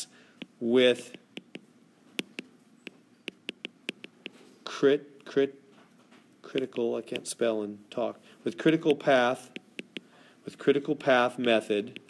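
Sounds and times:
stylus clicking on glass screen: 0.4 - 4.4, 6.5 - 7.3, 9.6 - 10.1.

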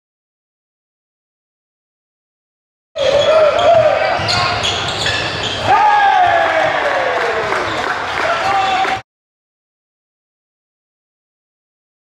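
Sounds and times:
sneaker squeaks: 3.0 - 5.8
voices on the court: 3.0 - 9.0.

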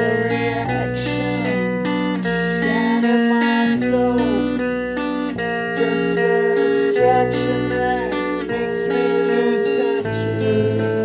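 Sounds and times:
drums: 0.0 - 11.0
electric guitar chords: 0.0 - 11.0
person singing yeah: 0.0 - 11.0.

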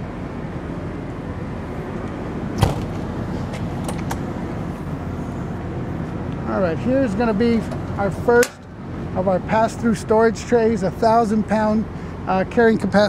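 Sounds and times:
low mechanical hum: 0.0 - 13.0.

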